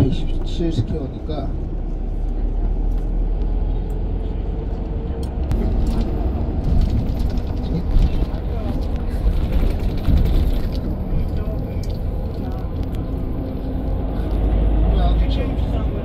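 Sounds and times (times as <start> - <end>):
vehicle engine and road rumble: 0.0 - 16.0.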